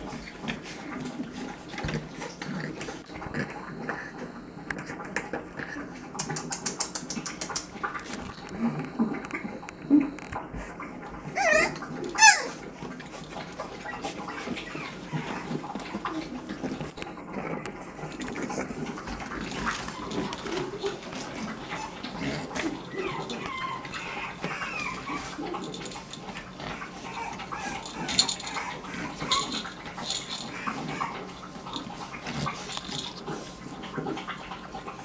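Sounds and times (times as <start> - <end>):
puppies growling: 0.0 - 35.0
puppies whining: 0.0 - 35.0
puppy yelping: 11.2 - 12.6, 13.7 - 16.6, 19.6 - 31.4.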